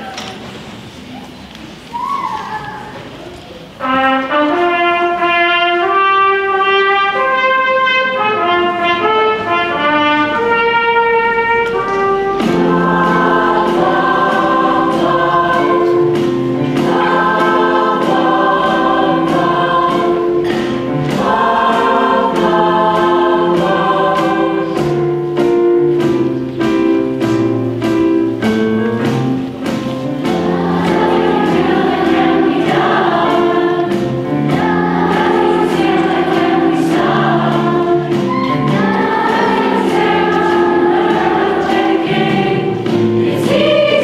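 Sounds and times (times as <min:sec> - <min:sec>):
children's choir singing: 0:01.7 - 0:44.0
trumpet solo melody: 0:03.8 - 0:12.5
accompaniment with steady beat: 0:04.7 - 0:44.0.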